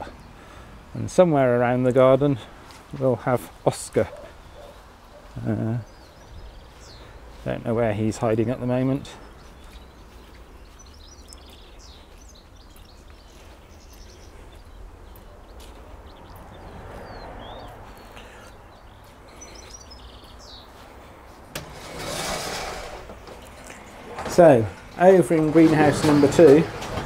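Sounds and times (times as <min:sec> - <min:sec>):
small birds chirping: 0:00.0 - 0:21.6
distant traffic hum: 0:00.0 - 0:27.0
greenhouse door opening: 0:21.5 - 0:27.0.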